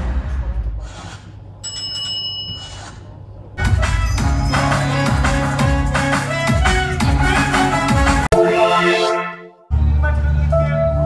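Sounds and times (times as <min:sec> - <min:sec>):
high ringing tones: 0:01.6 - 0:02.7
film soundtrack music: 0:03.6 - 0:11.0.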